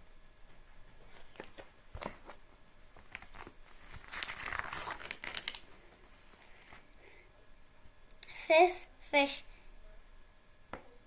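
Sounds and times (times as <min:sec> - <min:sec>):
paper pages rustling: 0:01.0 - 0:06.9.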